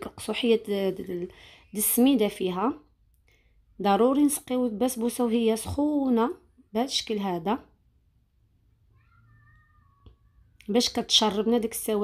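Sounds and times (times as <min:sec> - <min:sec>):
faint high drawn-out cry: 0:08.9 - 0:10.6.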